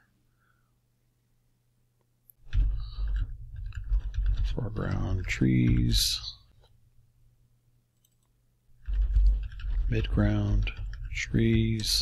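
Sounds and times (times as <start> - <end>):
low electrical hum: 0.0 - 12.0
computer mouse clicks: 8.0 - 12.0.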